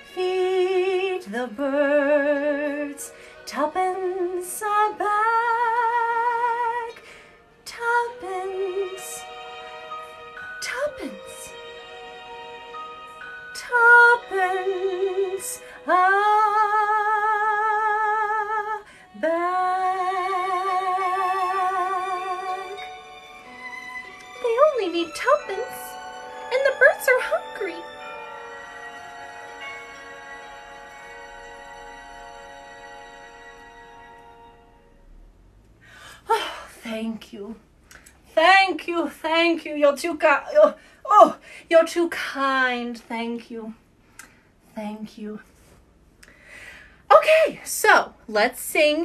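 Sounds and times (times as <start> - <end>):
woman speaking: 10.6 - 11.6, 24.3 - 28.0, 36.3 - 37.6, 38.3 - 43.8, 44.8 - 45.4, 47.1 - 49.0
person singing with vibrato: 13.1 - 23.1.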